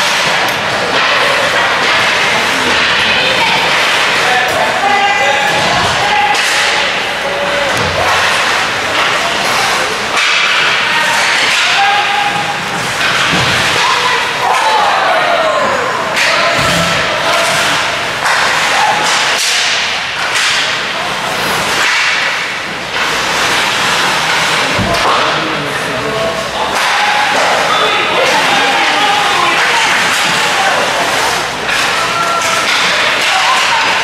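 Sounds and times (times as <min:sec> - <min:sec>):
hockey sticks and puck clacking: 0:00.0 - 0:34.0
skate blades scraping ice: 0:20.3 - 0:24.8.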